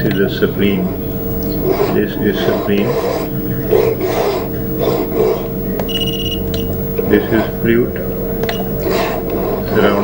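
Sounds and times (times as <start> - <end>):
electrical hum: 0.0 - 10.0
short electronic beep: 5.8 - 6.8.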